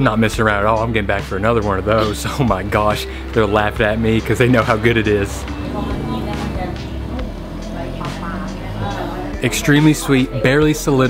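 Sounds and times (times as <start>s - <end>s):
faint voices: 1.9s - 11.0s
steady low hum: 3.8s - 9.4s.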